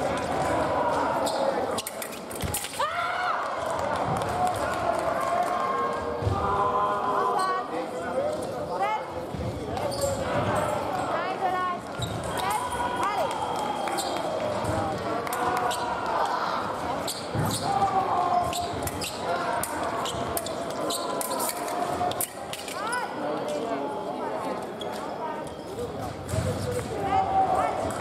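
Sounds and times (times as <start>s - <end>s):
hubbub of voices: 0.0s - 28.0s
shoes thudding and squeaking: 17.0s - 19.2s.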